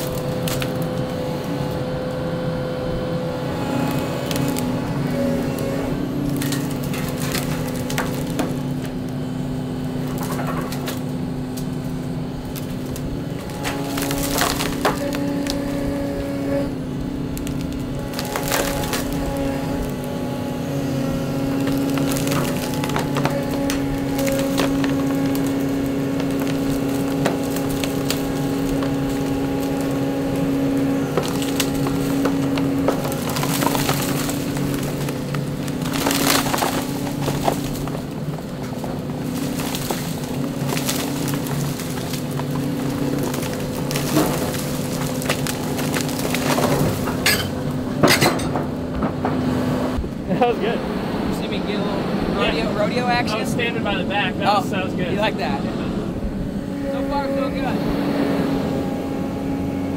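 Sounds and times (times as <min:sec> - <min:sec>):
tree limbs cracking and snapping: 0:00.0 - 0:02.2, 0:03.6 - 0:49.9
excavator engine and hydraulics: 0:00.0 - 0:59.9.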